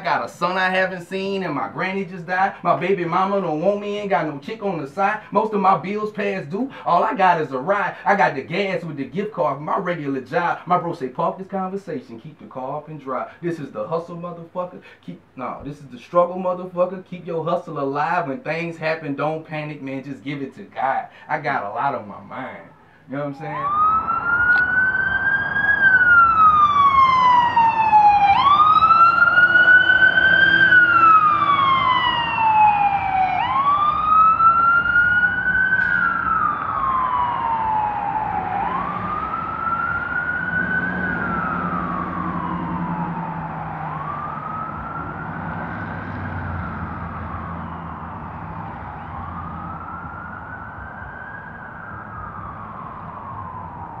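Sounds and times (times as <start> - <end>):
emergency vehicle siren wailing: 0.0 - 8.6, 22.2 - 54.0.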